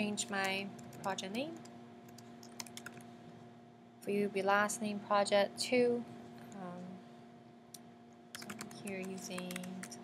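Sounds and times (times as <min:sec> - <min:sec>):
steady low hum: 0:00.0 - 0:10.0
keyboard typing: 0:00.3 - 0:03.1, 0:08.3 - 0:10.0.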